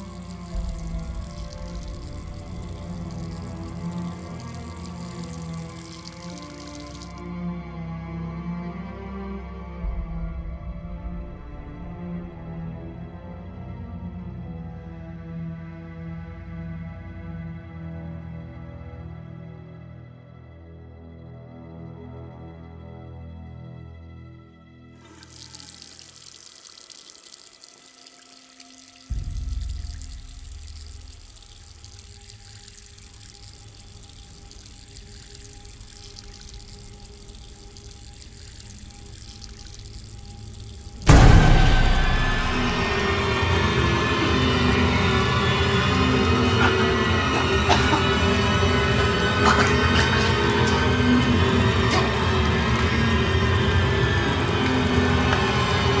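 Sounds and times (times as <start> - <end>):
rushing water sound effects: 0.0 - 7.6, 25.0 - 56.0
horror film score: 0.0 - 26.3, 27.5 - 56.0
deep boom: 41.0 - 46.4
sudden loud hit: 41.0 - 46.4.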